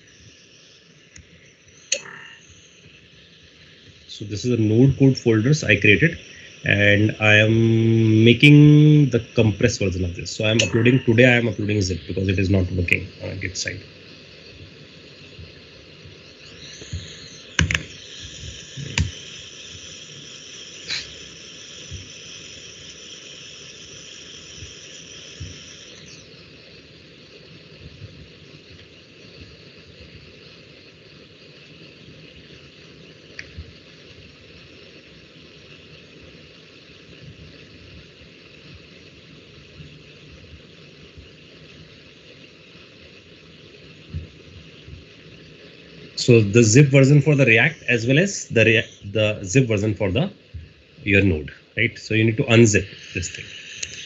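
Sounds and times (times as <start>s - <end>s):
faint high whine: 0.0s - 54.0s
low hiss of room noise: 0.0s - 54.0s
sharp clicks: 1.1s - 3.0s, 16.4s - 20.0s, 52.8s - 54.0s.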